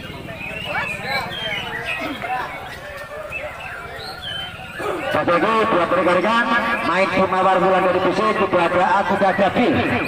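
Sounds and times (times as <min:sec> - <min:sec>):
crowd chatter: 0:00.0 - 0:10.0
songbirds singing: 0:00.0 - 0:10.0.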